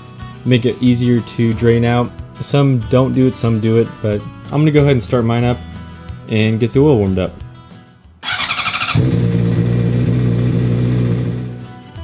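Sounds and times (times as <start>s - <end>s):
motorcycle starter spinning: 8.2s - 10.9s
motorcycle engine idling: 8.2s - 11.6s.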